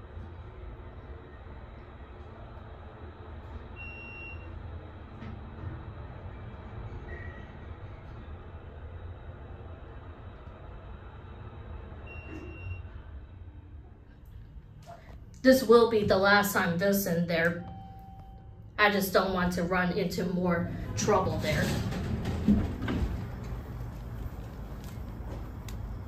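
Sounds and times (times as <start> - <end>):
elevator ride rumble: 0.0 - 26.0.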